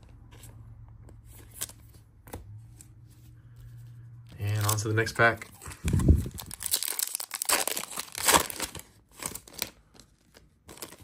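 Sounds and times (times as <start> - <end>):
card and plastic sleeve rustling: 0.0 - 11.0.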